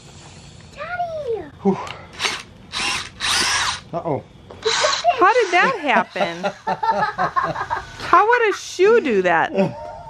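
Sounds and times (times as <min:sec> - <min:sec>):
drill boring through rubber: 0:02.2 - 0:03.8, 0:04.6 - 0:05.7.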